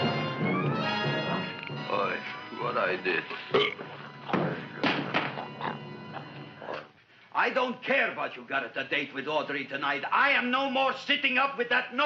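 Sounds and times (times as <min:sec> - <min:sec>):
loud burps: 0:03.5 - 0:04.3.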